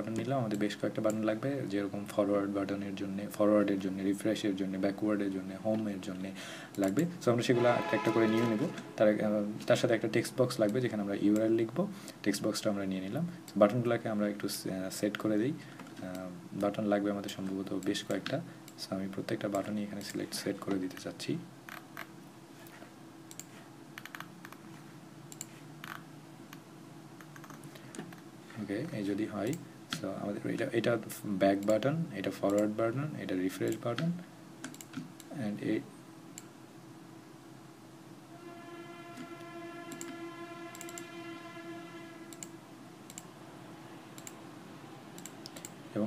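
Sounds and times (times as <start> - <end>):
low steady hum: 0.0 - 46.0
computer mouse clicks: 23.3 - 24.6, 25.3 - 26.6, 27.2 - 28.2, 33.6 - 35.4, 43.1 - 43.3, 44.2 - 44.4, 45.2 - 45.8
computer keyboard keys clicking: 33.7 - 35.0.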